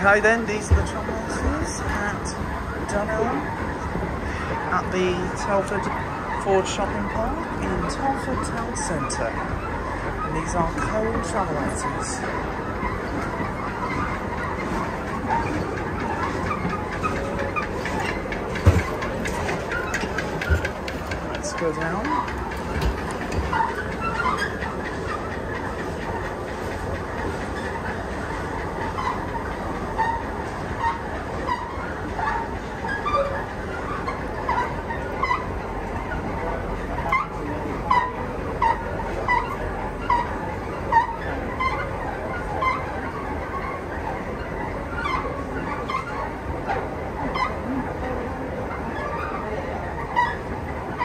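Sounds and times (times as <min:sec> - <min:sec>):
travelator rumbling: 0:00.0 - 0:51.0.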